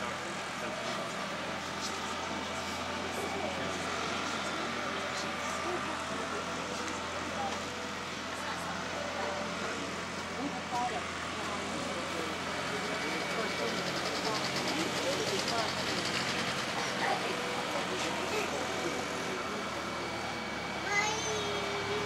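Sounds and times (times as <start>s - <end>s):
distant voices murmuring: 0.0s - 22.0s.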